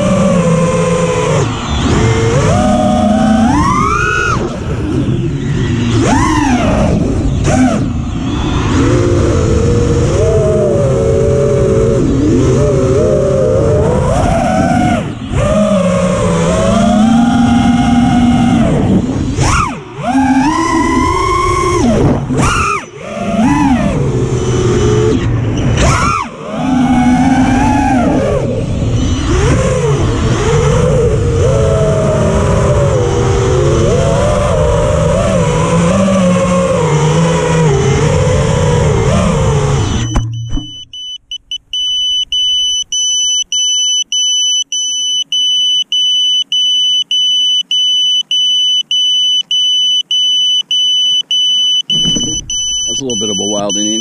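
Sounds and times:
quadcopter motors whining: 0.0s - 41.4s
high-pitched buzzer beeps: 40.0s - 54.0s.

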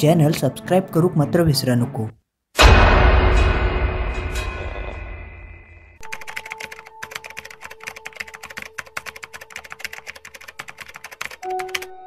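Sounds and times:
rapid keyboard typing clicks: 6.0s - 12.0s.

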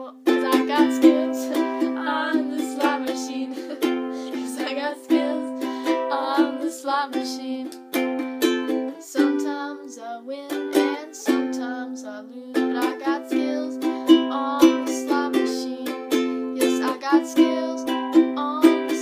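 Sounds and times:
ukulele strumming chords: 0.0s - 19.0s.

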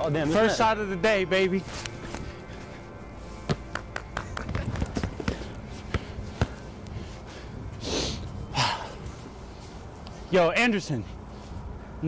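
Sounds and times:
faint background music: 0.0s - 12.0s
basketball bouncing: 3.5s - 6.6s.

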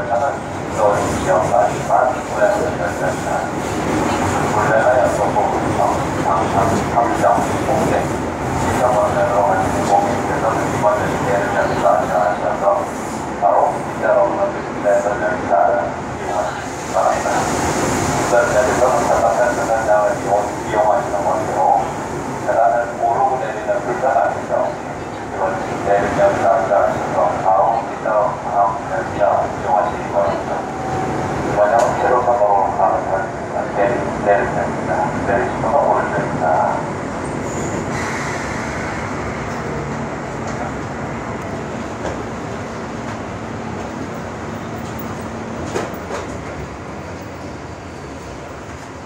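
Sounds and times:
voices talking: 0.0s - 17.6s, 18.2s - 37.9s.

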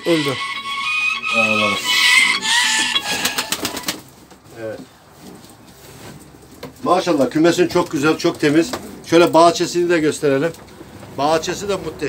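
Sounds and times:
rooster crowing: 0.0s - 3.9s.

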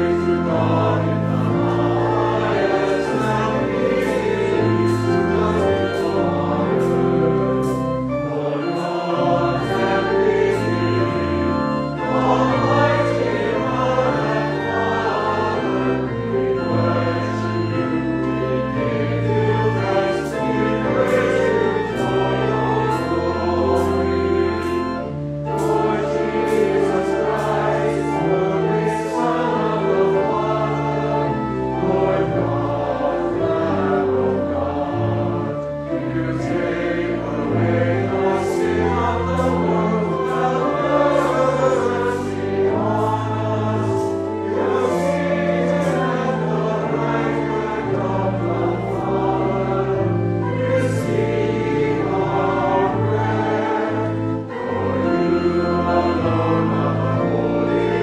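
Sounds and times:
choir singing: 0.0s - 58.0s
organ notes: 0.0s - 58.0s.

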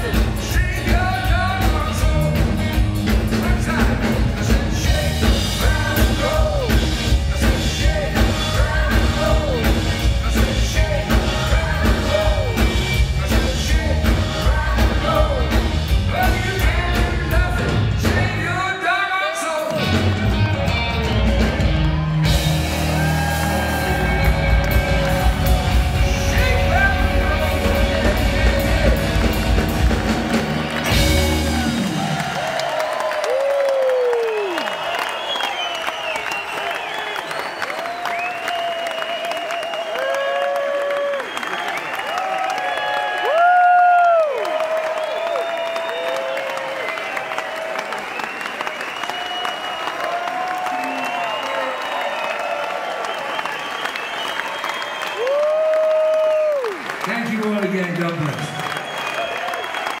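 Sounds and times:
audience applauding: 0.0s - 60.0s
audience whoops and shouts: 18.8s - 60.0s.

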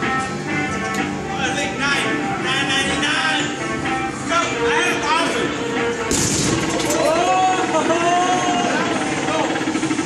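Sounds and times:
fast electronic rattle: 6.2s - 7.2s.

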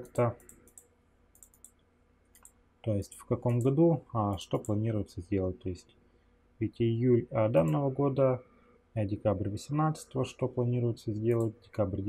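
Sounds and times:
faint mouse clicks: 0.0s - 4.8s, 11.3s - 11.6s.

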